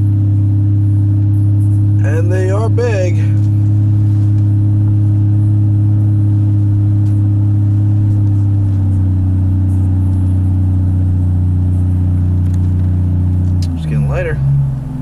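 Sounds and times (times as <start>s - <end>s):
truck engine and road noise: 0.0s - 15.0s.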